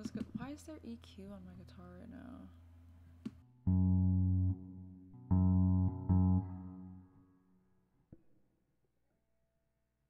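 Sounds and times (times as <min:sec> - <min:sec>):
electric guitar low notes plucked: 0:03.6 - 0:07.6.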